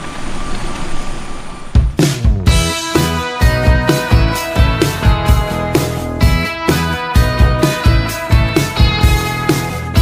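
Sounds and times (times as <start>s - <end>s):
music: 1.7s - 10.0s.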